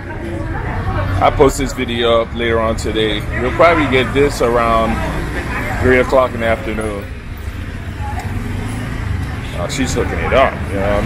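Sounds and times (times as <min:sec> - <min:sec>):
faint distant voices: 0:00.0 - 0:11.0
low rumble of crowded alley: 0:00.0 - 0:11.0.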